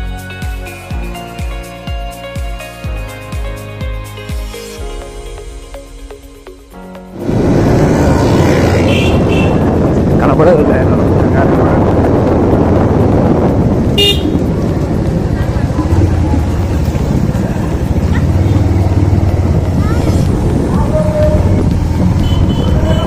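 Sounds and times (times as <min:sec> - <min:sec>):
road noise: 0:04.5 - 0:23.0
motorcycle engine running: 0:07.1 - 0:23.0
vehicle horn toot: 0:08.8 - 0:09.8, 0:13.9 - 0:14.4, 0:22.2 - 0:23.0.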